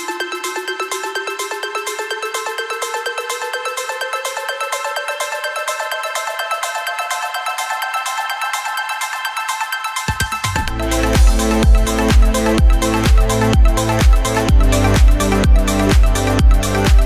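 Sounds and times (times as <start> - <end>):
fast percussive dance beat: 0.0 - 17.0.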